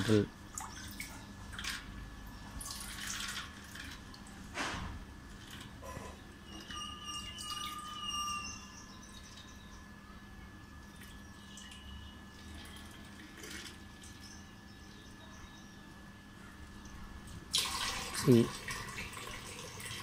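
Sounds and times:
water trickling and dripping: 0.0s - 4.4s, 10.7s - 14.5s, 16.8s - 20.0s.

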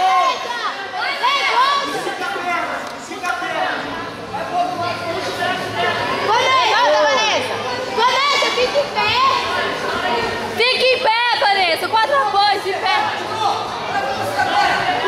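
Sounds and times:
spectators talking and calling out: 0.0s - 15.0s.

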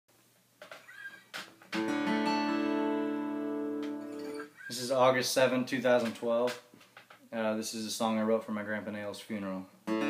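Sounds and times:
acoustic guitar chord ringing: 1.8s - 4.5s.

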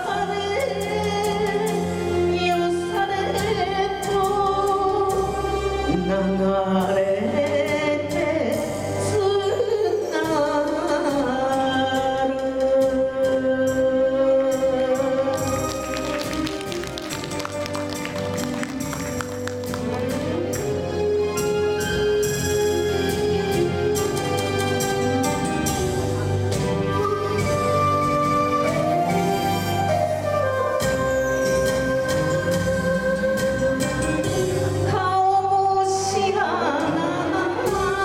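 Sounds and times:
woman singing into a microphone: 0.0s - 15.6s, 34.7s - 38.0s
karaoke backing track: 0.0s - 38.0s
sharp taps or claps: 15.4s - 20.7s.

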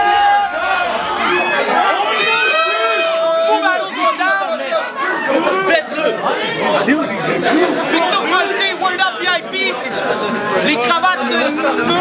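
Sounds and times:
crowd of men chattering: 0.0s - 12.0s.

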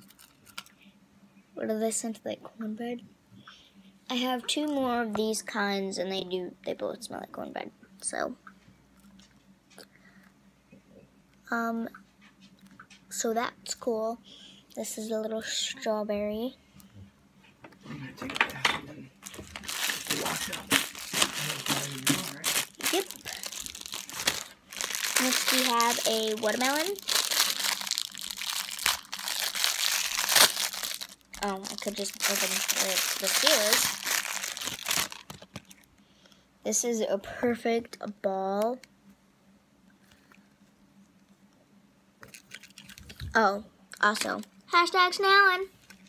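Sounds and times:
faint room hum: 0.0s - 46.0s
plastic bag crinkling: 19.2s - 35.9s, 42.2s - 43.3s.

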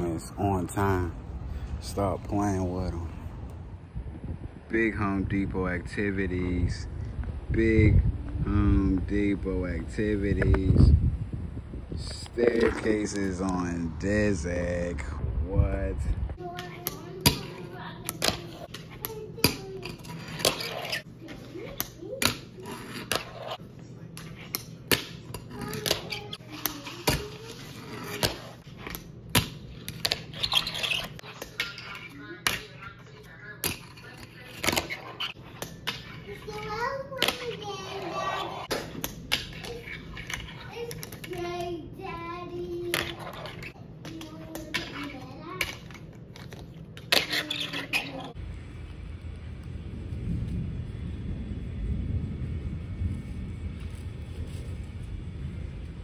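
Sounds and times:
low rumble: 14.9s - 16.4s, 48.4s - 56.0s.

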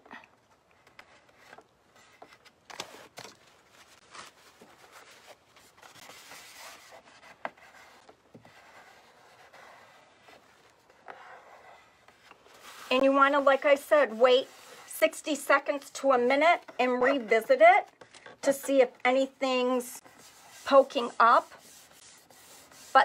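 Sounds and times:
paper rubbing and scraping: 3.7s - 15.8s, 20.0s - 23.0s.

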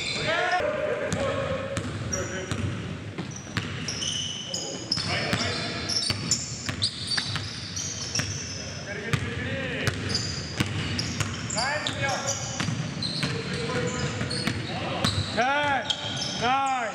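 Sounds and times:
sneaker squeaks: 0.0s - 0.6s, 1.8s - 8.8s, 9.9s - 16.9s
basketball dribbling on gym floor: 9.1s - 12.0s.

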